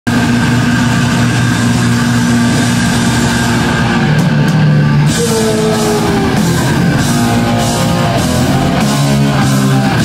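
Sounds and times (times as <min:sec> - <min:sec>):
distorted electric guitars droning: 0:00.1 - 0:10.0.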